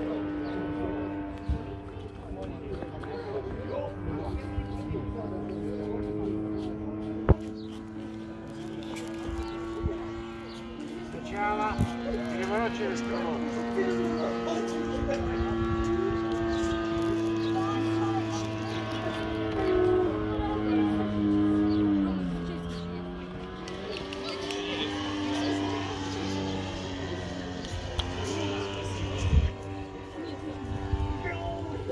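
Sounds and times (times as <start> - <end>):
model airplane engine droning: 0.0 - 31.9.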